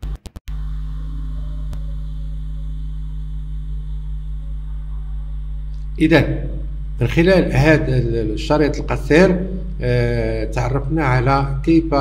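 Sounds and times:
mains hum: 0.5s - 12.0s.

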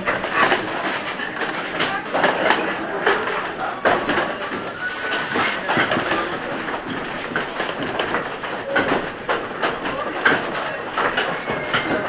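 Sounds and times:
windmill machinery clattering: 0.0s - 12.0s
wooden machinery knocks: 1.8s - 12.0s.

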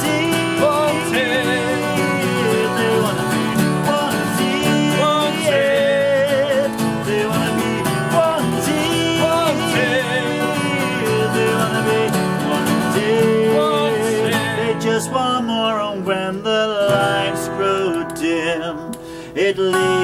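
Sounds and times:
acoustic guitars strummed: 0.0s - 20.0s
man singing: 0.0s - 20.0s.

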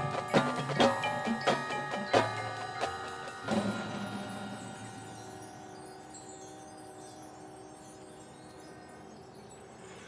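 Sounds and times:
bell-like metallic percussion tones: 0.0s - 10.0s.

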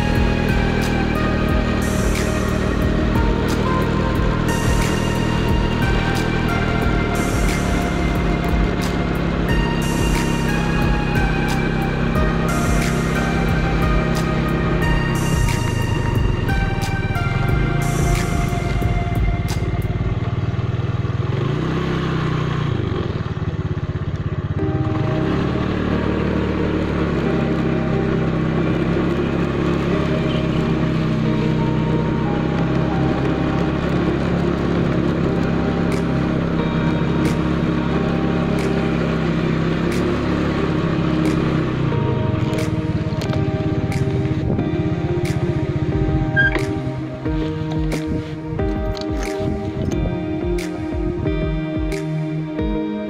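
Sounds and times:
music playing: 0.0s - 21.8s, 24.6s - 53.0s
motorcycle engine running: 0.0s - 53.0s.

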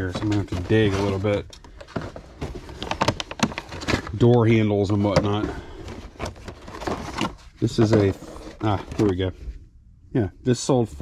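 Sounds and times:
plastic parts clattering in a box: 0.0s - 9.3s.

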